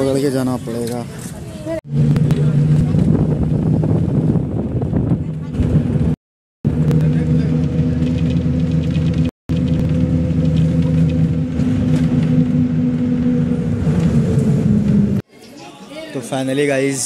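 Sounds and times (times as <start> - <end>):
bus engine droning: 1.1 - 15.2.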